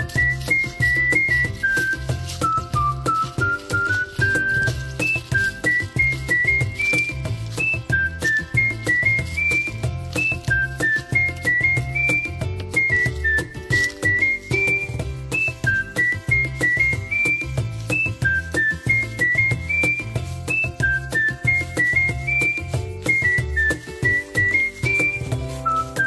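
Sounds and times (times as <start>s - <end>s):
whistled melody: 0.0s - 26.0s.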